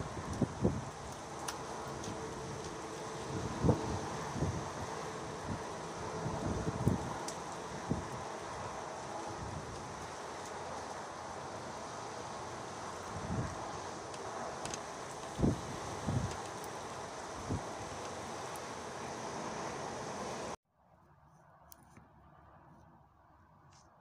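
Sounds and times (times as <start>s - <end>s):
low gust buffets: 0.0s - 10.2s
wind blowing over microphone: 0.0s - 20.6s.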